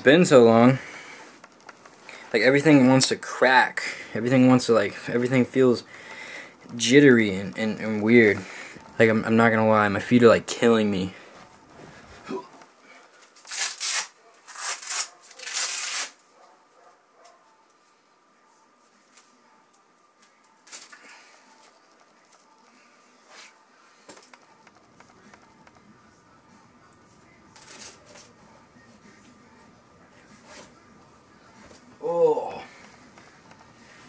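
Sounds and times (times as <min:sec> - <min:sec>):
rustling on a mattress: 0:11.3 - 0:12.3.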